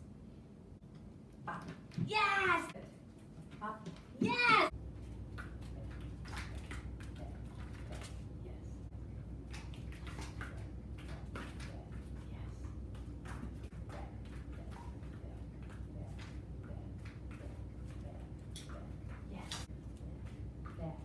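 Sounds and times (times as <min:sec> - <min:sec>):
steady low hum: 0:00.0 - 0:21.0
dog's feet tapping and padding: 0:01.5 - 0:08.3, 0:09.2 - 0:21.0.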